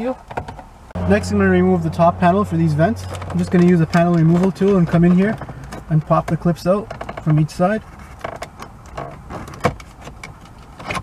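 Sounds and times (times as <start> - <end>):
plastic creaking: 3.0 - 11.0.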